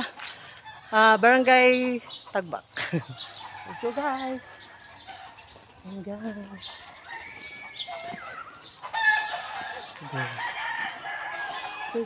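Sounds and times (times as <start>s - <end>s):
rooster crowing: 6.1s - 12.0s.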